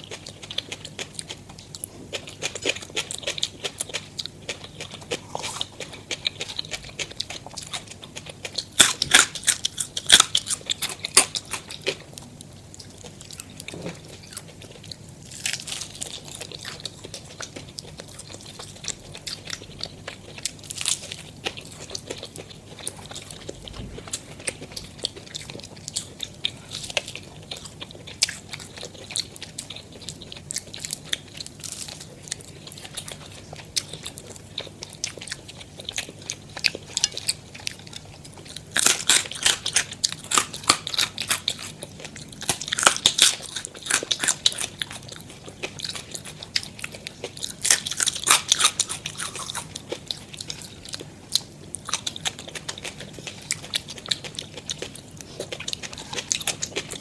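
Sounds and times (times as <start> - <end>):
chewing crunchy fried chicken: 0.0 - 57.0.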